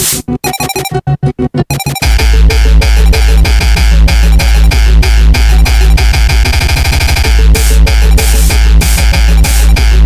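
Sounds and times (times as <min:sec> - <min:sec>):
heavy kick drum and bass: 0:02.0 - 0:10.0
stuttering synth stabs: 0:02.0 - 0:10.0.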